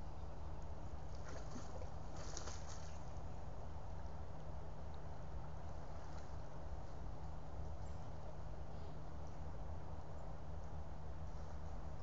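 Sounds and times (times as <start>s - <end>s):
water sloshing and splashing: 1.1s - 3.2s.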